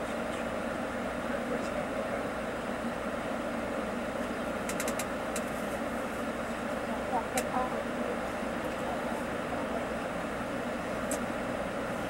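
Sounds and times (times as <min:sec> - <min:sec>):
bus engine idling hum: 0:00.0 - 0:12.0.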